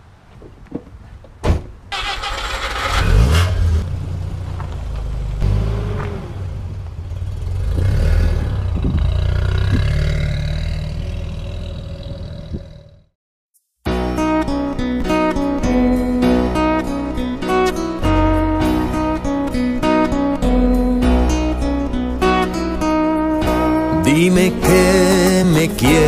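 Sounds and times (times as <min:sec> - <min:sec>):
car engine starting and revving: 0:01.9 - 0:12.7.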